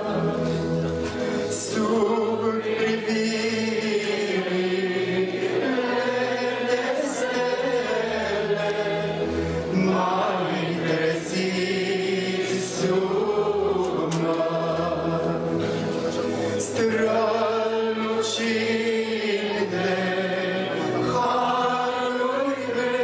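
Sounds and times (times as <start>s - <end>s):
chorus singing a hymn: 0.0s - 23.0s
keyboard accompaniment: 0.0s - 23.0s
man singing into a microphone: 1.3s - 4.6s, 9.7s - 23.0s.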